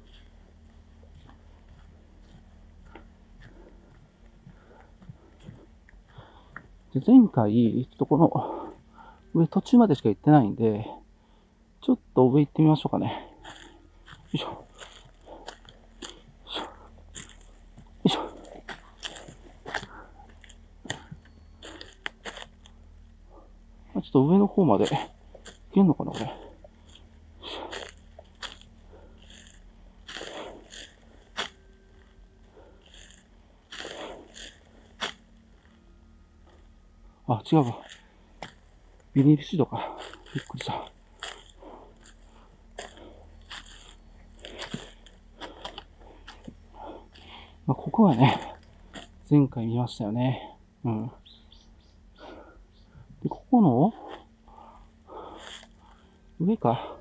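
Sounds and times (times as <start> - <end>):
footsteps crunching through dry leaves: 0.0 - 6.3, 13.2 - 22.8, 24.3 - 49.4.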